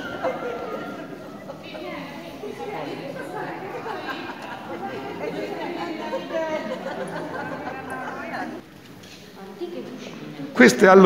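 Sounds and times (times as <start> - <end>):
voices talking over one another: 0.0 - 8.6.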